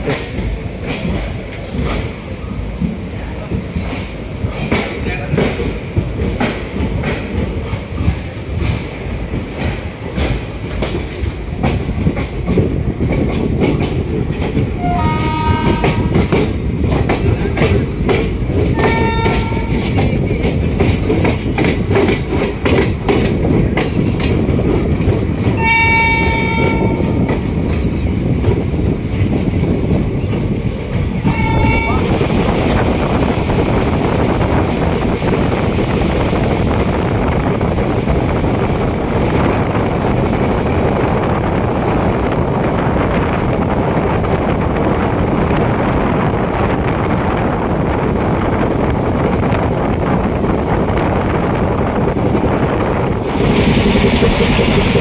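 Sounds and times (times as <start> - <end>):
train wheels clattering over rails: 0.0 - 55.0
wind and running noise: 5.5 - 25.6, 26.2 - 55.0
train horn blasts: 14.8 - 16.2, 18.8 - 19.9, 25.6 - 27.2, 31.2 - 32.1.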